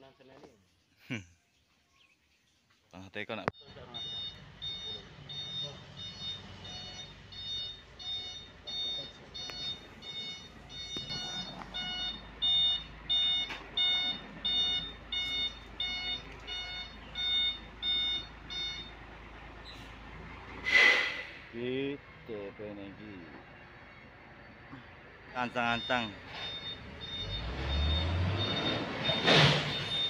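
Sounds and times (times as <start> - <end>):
truck reversing alarm beeping: 3.5 - 20.8, 23.0 - 30.0
truck engine running low: 3.7 - 30.0.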